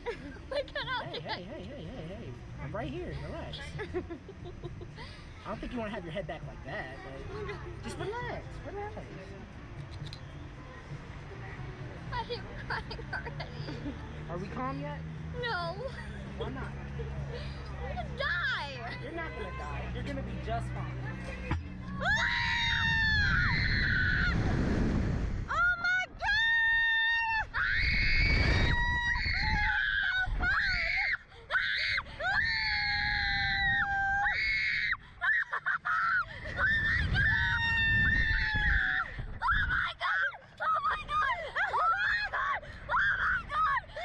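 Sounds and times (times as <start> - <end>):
girl and woman screaming: 22.0 - 24.4, 25.5 - 43.8
wind noise on microphone: 22.0 - 31.0, 32.0 - 34.4, 36.2 - 40.0.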